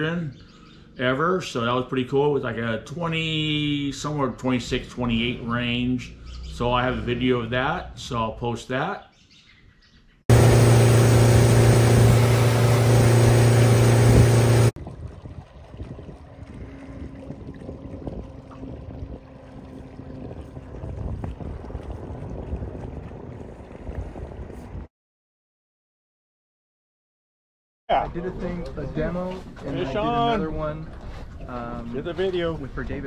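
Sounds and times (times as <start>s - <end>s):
faint engine hum: 10.3s - 23.6s
outboard motor running: 10.3s - 24.8s.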